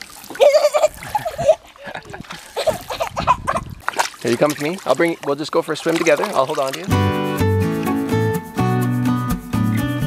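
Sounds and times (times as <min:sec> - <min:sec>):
pool water splashing: 0:00.0 - 0:08.0.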